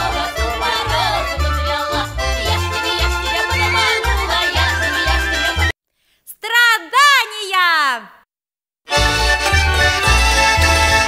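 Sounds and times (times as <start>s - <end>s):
folk band music: 0.0s - 5.7s, 8.9s - 11.0s.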